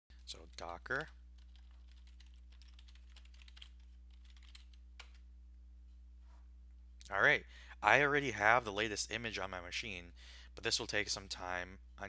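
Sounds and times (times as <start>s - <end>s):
low electrical hum: 0.1s - 12.0s
typing on computer keyboard: 0.3s - 5.2s.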